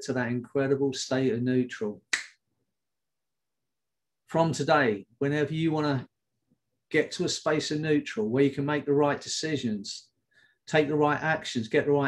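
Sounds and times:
finger snap: 0:02.1 - 0:02.4.

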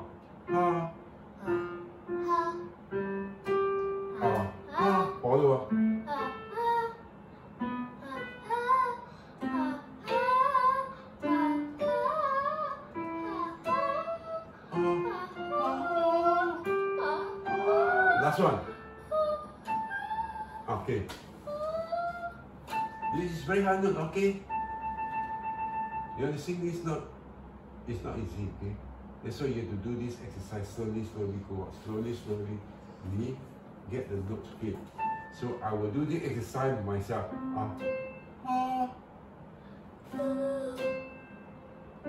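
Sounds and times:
electronic keyboard notes: 0:00.0 - 0:07.0, 0:07.6 - 0:20.8, 0:22.0 - 0:27.0, 0:37.1 - 0:39.0
girl singing vocal exercise: 0:04.1 - 0:05.3, 0:08.0 - 0:20.7, 0:21.5 - 0:22.4, 0:38.4 - 0:39.0, 0:40.1 - 0:41.0.

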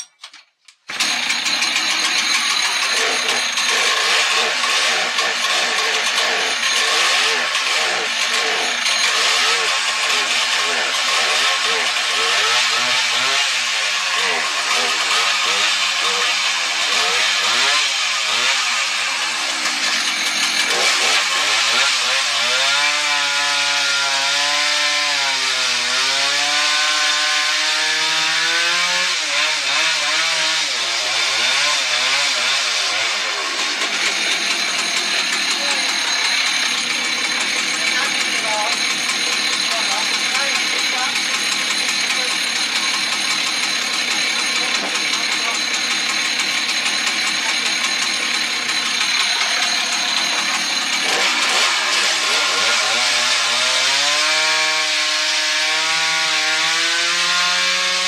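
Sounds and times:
chainsaw pull-start: 0:00.1 - 0:58.0
chainsaw revving and cutting log: 0:00.9 - 0:58.0.

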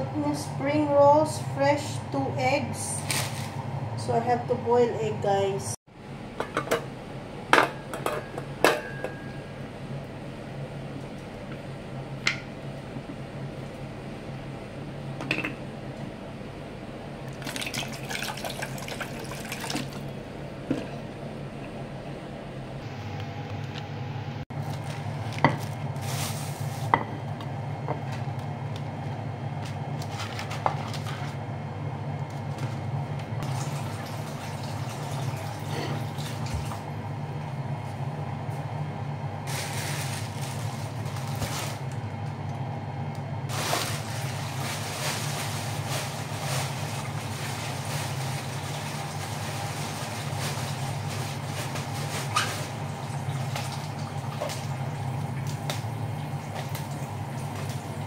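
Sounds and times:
steady low hum: 0:00.0 - 0:58.0
plastic bags rustling: 0:24.6 - 0:26.9, 0:39.5 - 0:42.0, 0:43.5 - 0:53.8.

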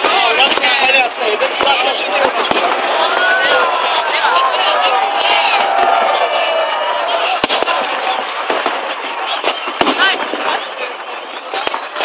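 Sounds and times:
crowd chatter: 0:00.0 - 0:12.0
fireworks bangs: 0:00.0 - 0:12.0.

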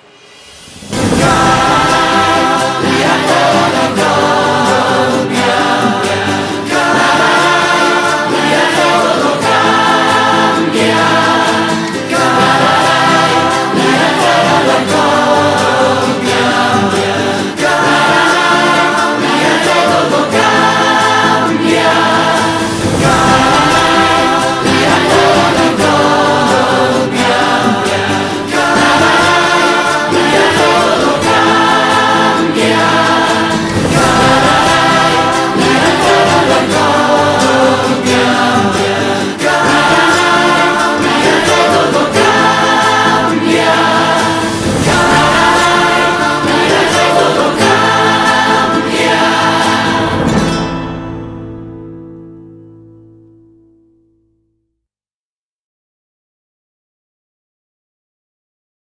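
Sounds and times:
choir singing with accompaniment: 0:00.0 - 0:52.1.

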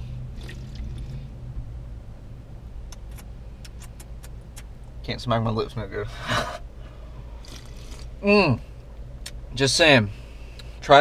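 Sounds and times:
idling vehicle hum: 0:00.0 - 0:11.0
lip-smacking clicks: 0:02.9 - 0:04.8
slurping sips from drink can: 0:07.4 - 0:08.1.

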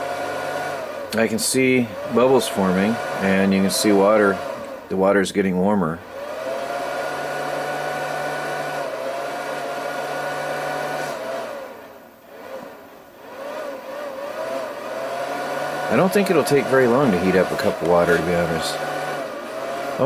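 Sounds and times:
cooling fan whirring: 0:00.0 - 0:20.0.

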